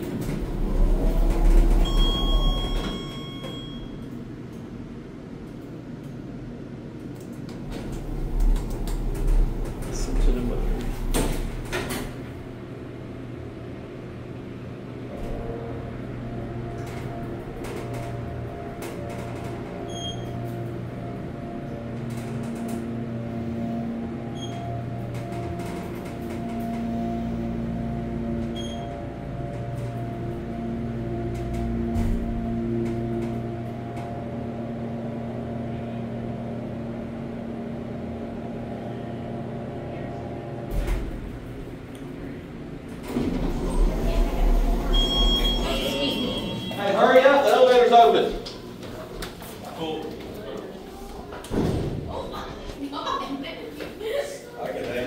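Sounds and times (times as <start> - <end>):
elevator car stopping thump: 0.0 - 4.0, 7.5 - 12.5, 15.1 - 35.4, 40.5 - 46.8, 51.3 - 52.3
elevator doors sliding open: 0.0 - 4.3, 7.0 - 14.1, 15.1 - 38.8, 39.4 - 53.7
elevator pump motor humming: 0.0 - 55.0
short high beeps: 1.8 - 4.0, 44.9 - 47.0.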